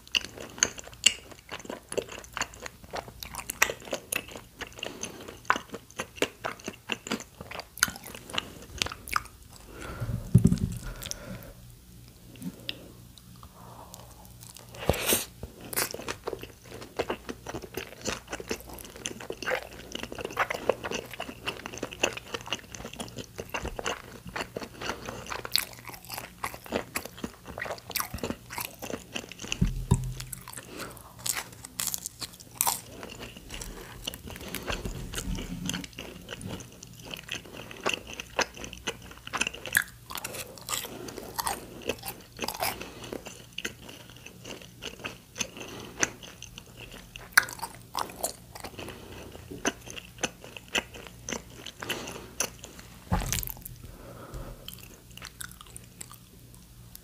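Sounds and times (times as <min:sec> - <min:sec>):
person chewing and crunching food: 0:00.0 - 0:57.0
low thumps: 0:29.6 - 0:30.5, 0:53.1 - 0:54.5.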